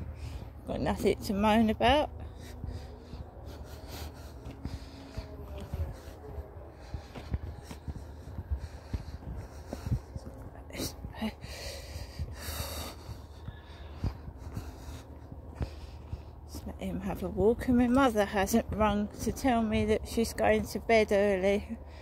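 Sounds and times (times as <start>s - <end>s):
footsteps on dirt: 0.0s - 21.9s
wind rumble: 0.0s - 22.0s.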